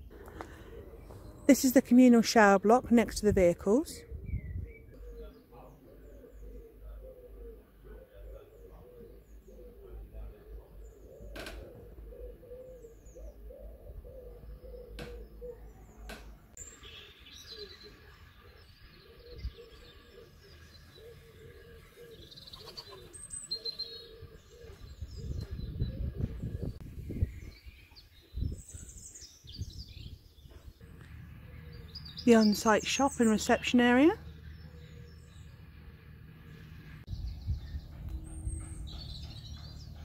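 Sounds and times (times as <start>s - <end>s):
small birds chirping: 0.0s - 40.0s
pigeon cooing: 0.1s - 1.4s, 4.2s - 16.1s, 17.7s - 26.6s.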